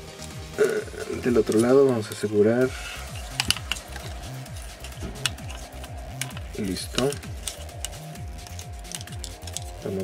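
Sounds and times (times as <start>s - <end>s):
electronic music: 0.0s - 10.0s
plastic toy parts clicking: 3.0s - 9.8s.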